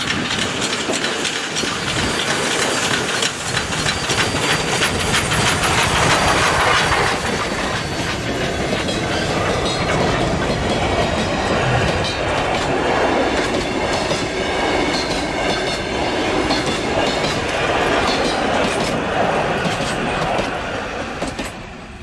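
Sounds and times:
wheels clicking on rails: 0.0s - 21.7s
steam train rolling: 0.0s - 22.0s.

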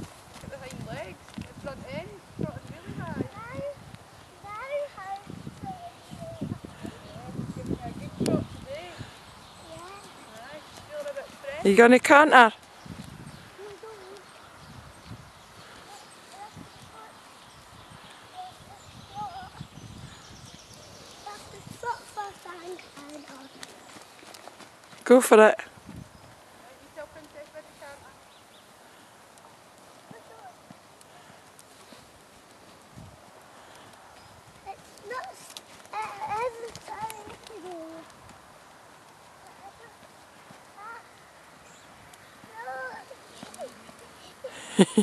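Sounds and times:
hoofbeats on soft ground: 0.0s - 11.9s, 12.5s - 25.2s, 26.0s - 28.7s, 29.4s - 44.4s.

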